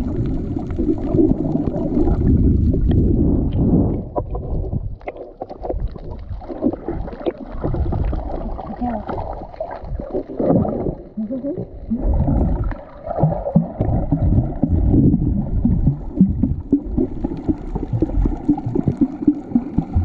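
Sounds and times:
underwater sloshing and gurgling: 0.0s - 20.0s.

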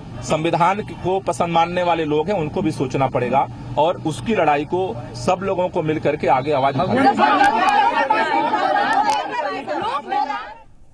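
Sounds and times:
voices talking over one another: 3.9s - 10.7s.

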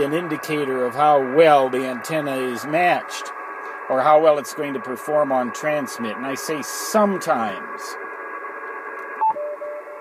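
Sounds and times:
radio speaker hissing: 0.0s - 9.0s
morse code tone: 9.2s - 10.0s
short radio beep: 9.2s - 10.0s.

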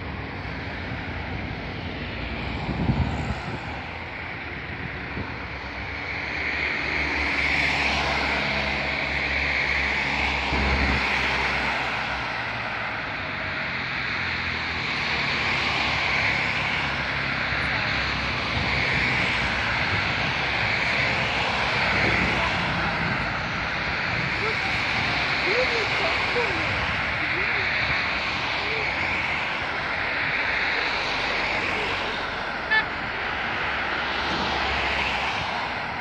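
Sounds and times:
cars passing: 0.0s - 36.0s
low engine drone: 0.0s - 36.0s.

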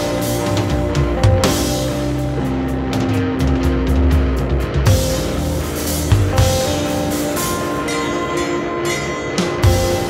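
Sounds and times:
electric bass notes ringing: 0.0s - 10.0s
electric guitar notes ringing: 0.0s - 10.0s
cymbal wash: 5.0s - 10.0s.

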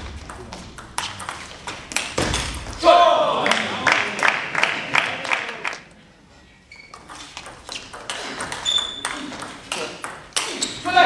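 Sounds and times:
table tennis ball hits: 0.0s - 2.8s, 6.9s - 10.8s
loud shout: 2.8s - 3.8s.

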